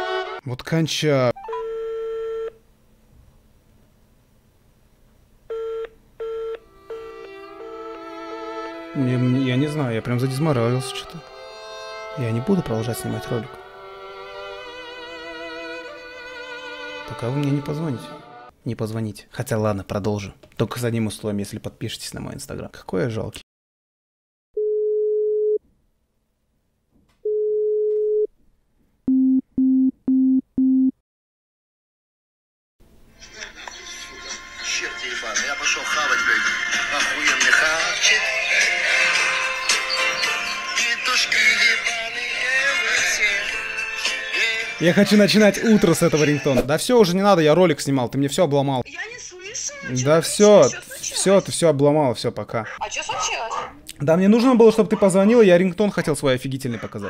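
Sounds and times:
phone ringback tone: 0:01.4 - 0:02.6, 0:05.5 - 0:07.3, 0:24.6 - 0:25.6, 0:27.2 - 0:28.3
telephone busy signal beeps: 0:24.6 - 0:25.6, 0:27.3 - 0:28.3.

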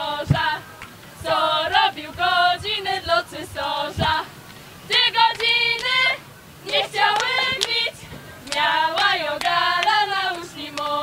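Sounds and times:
girls singing together: 0:00.0 - 0:11.0.

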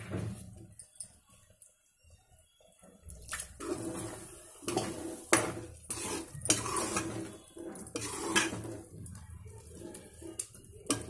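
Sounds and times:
metal ladle scraping and knocking pot: 0:03.6 - 0:11.0.

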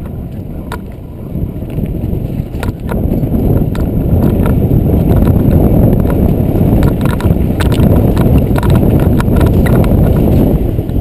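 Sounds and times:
wind on microphone: 0:00.0 - 0:11.0
bike rattling clicks and knocks: 0:01.6 - 0:11.0.

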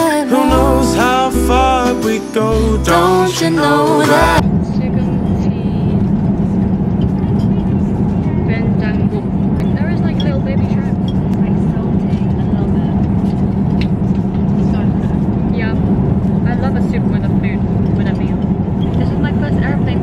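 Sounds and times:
airliner cabin drone: 0:04.3 - 0:20.0.

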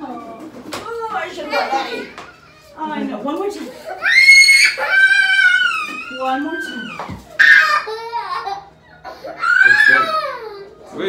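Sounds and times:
toddler crying: 0:01.4 - 0:02.8, 0:03.8 - 0:10.8.

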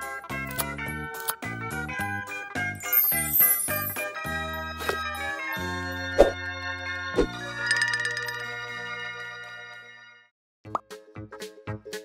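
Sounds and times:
background music with ringing chimes: 0:02.7 - 0:10.3.

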